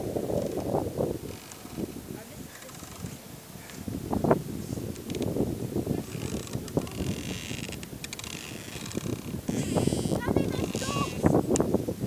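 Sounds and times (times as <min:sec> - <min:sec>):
tree trunk creaking against fence: 0:00.0 - 0:11.7
wind buffeting microphone: 0:00.0 - 0:12.0.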